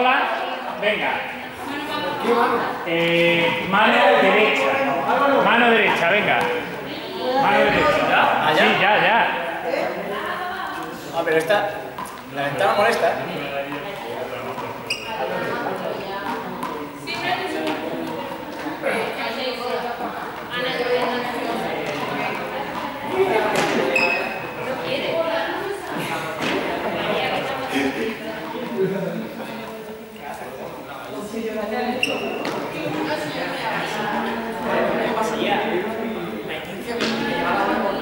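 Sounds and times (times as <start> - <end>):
people talking in echoing hall: 0.0 - 38.0.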